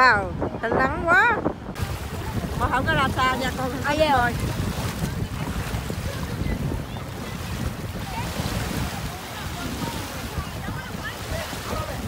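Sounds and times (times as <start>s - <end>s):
surf washing and splashing: 0.0s - 12.0s
wind rumbling on microphone: 0.0s - 12.0s.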